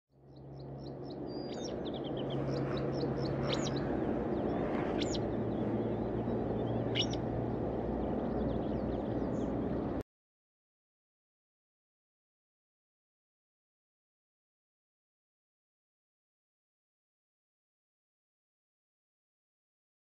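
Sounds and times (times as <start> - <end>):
low rumble with hum: 0.2 - 10.0.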